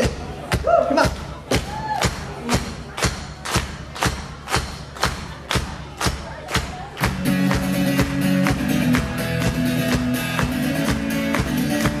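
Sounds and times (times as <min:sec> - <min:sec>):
drum kit beat: 0:00.0 - 0:12.0
full band playing: 0:00.0 - 0:12.0
person shouting: 0:00.6 - 0:01.1.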